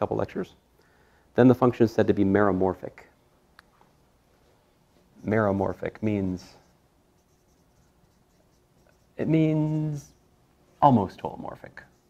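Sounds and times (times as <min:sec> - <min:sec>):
marker scratching on whiteboard: 0:05.2 - 0:10.2, 0:11.6 - 0:12.0.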